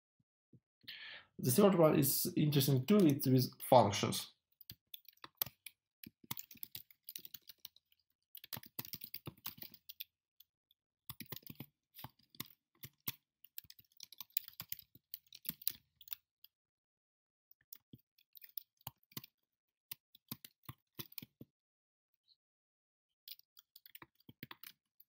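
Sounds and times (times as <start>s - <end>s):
typing on computer keyboard: 4.6s - 10.1s, 11.1s - 16.2s, 17.7s - 19.3s, 20.2s - 21.4s, 23.3s - 24.8s.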